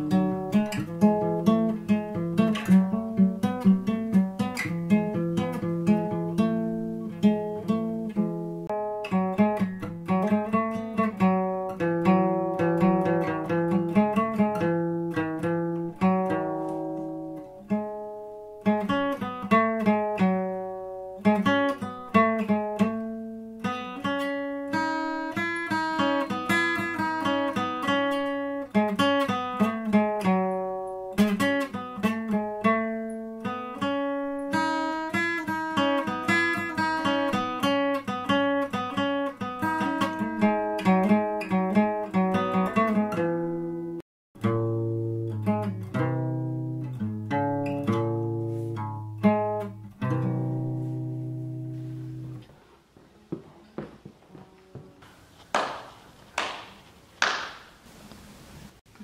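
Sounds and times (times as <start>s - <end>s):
fingerstyle acoustic guitar: 0.0s - 53.4s.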